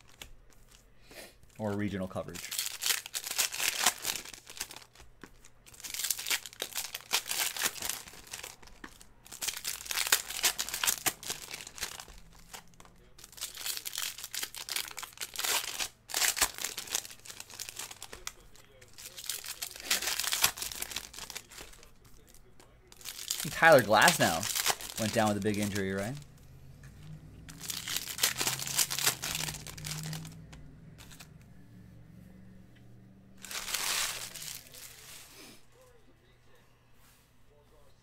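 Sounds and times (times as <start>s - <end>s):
foil wrappers crinkling and tearing: 2.3s - 26.3s, 27.5s - 30.4s, 33.4s - 35.3s.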